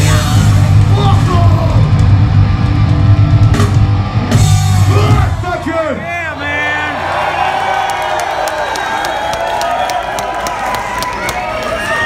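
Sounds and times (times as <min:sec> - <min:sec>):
punk rock band playing: 0:00.0 - 0:07.4
crowd cheering and shouting: 0:00.0 - 0:12.0.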